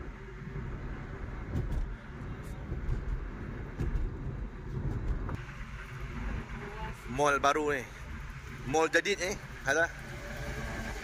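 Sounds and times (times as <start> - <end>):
car engine and tyre rumble: 0.0 - 11.0.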